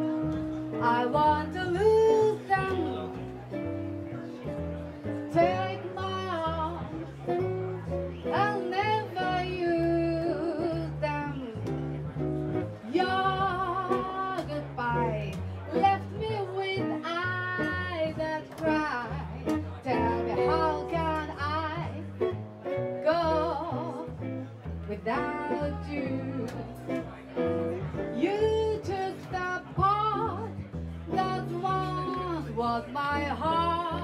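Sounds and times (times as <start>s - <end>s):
archtop guitar melody: 0.0s - 34.0s
walking upright bass: 0.0s - 34.0s.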